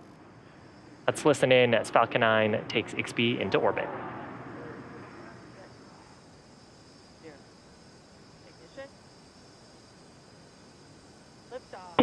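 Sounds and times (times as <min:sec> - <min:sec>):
faint ambient noise: 0:00.0 - 0:12.0.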